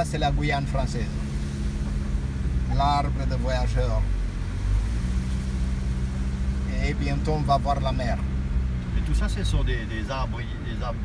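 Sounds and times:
car engine and tyre hum: 0.0s - 11.0s.

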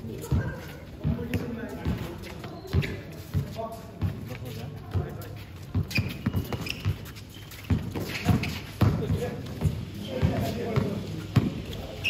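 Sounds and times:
players' voices: 0.0s - 6.6s, 7.8s - 12.0s
basketball bouncing on concrete: 0.2s - 11.6s.

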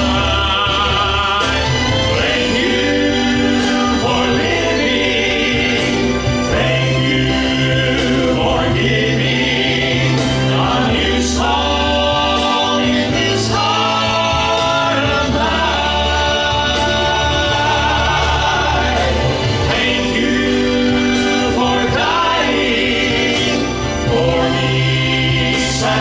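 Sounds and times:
male quartet singing in harmony: 0.0s - 26.0s.

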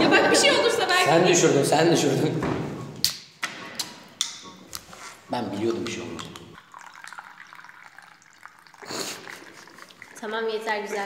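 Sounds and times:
liquid trickling into plastic cup: 5.5s - 11.0s.

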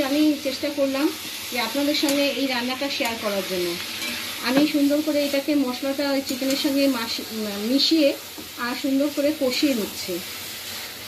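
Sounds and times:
food sizzling in pan: 0.0s - 11.0s.

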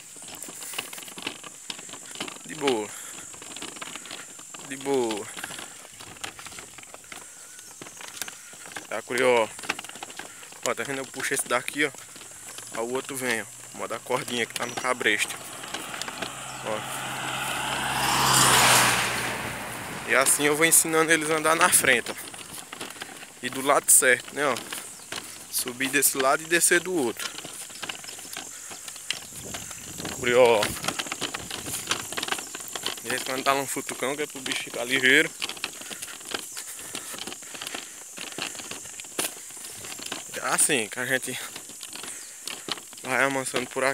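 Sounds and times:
cart rattling on paved road: 0.0s - 43.9s
car passing on road: 13.4s - 23.0s.

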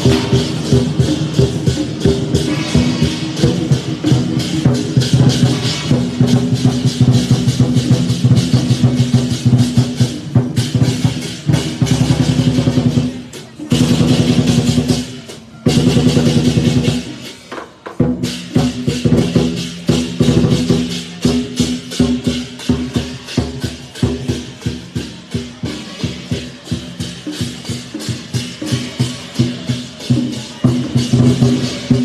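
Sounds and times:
gong: 0.0s - 13.2s
clashing cymbals: 0.0s - 32.0s
large drum beating: 0.0s - 32.0s.

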